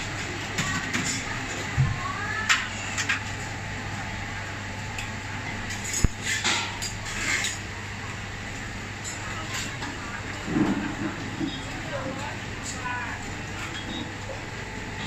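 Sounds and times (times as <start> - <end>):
electric fans humming: 0.0 - 15.0
diners chatter: 7.0 - 15.0.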